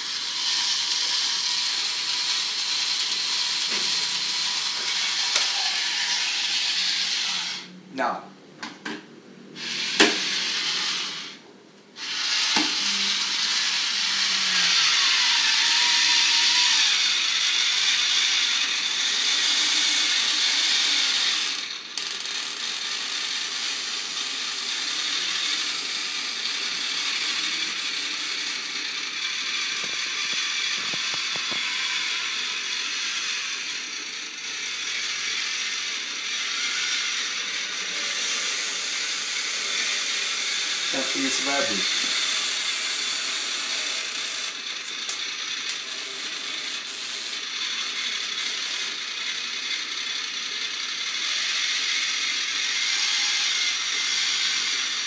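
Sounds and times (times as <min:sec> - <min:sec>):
can opener cutting can lid: 0:03.0 - 0:07.6, 0:09.6 - 0:10.4, 0:12.0 - 0:17.2, 0:29.6 - 0:32.2, 0:44.8 - 0:46.2.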